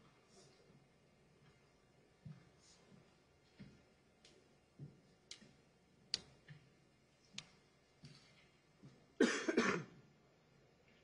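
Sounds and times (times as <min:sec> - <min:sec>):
person coughing: 0:09.2 - 0:10.0.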